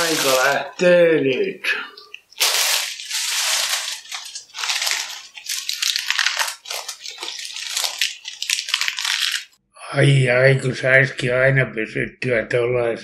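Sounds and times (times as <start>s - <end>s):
lettuce crunching being chewed: 1.9s - 9.6s.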